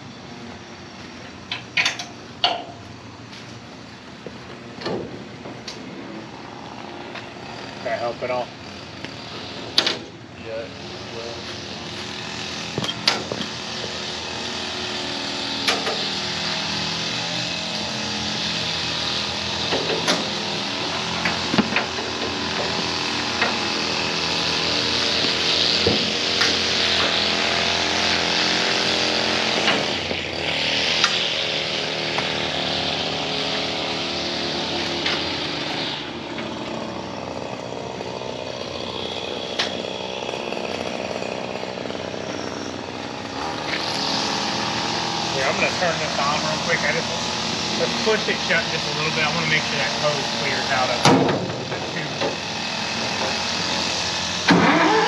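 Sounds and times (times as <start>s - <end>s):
gas engine running: 3.3s - 55.0s.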